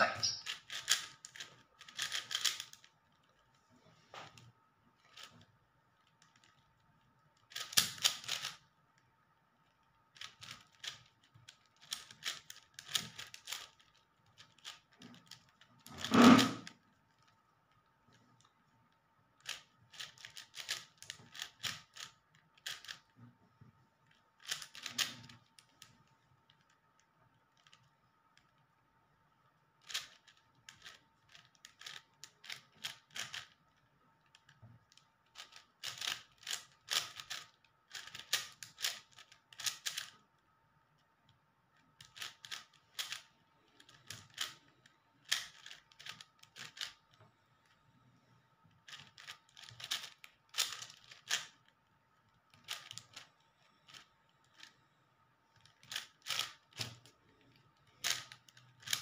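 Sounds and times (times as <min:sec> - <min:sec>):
puzzle cube clicking: 0:00.1 - 0:02.9, 0:07.4 - 0:08.6, 0:19.4 - 0:23.0, 0:24.4 - 0:25.2, 0:29.8 - 0:33.5, 0:42.0 - 0:43.2, 0:43.8 - 0:44.6, 0:45.2 - 0:47.0, 0:48.9 - 0:51.5, 0:55.6 - 0:57.0.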